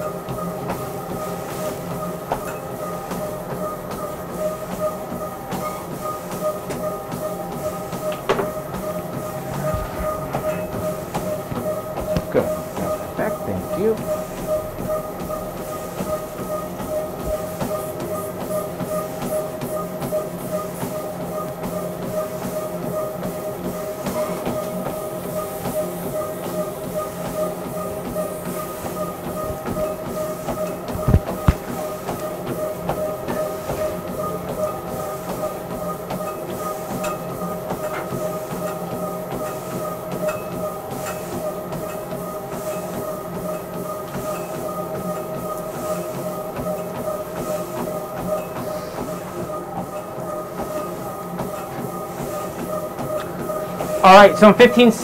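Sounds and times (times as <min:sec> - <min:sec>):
treadmill motor whine: 0:00.0 - 0:55.0
footfalls thudding on treadmill belt: 0:00.2 - 0:04.1, 0:04.7 - 0:13.1, 0:27.3 - 0:54.0.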